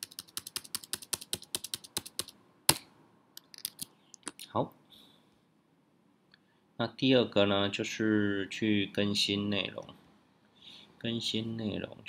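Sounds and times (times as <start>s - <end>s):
computer keyboard typing: 0.0s - 2.8s, 3.4s - 3.9s.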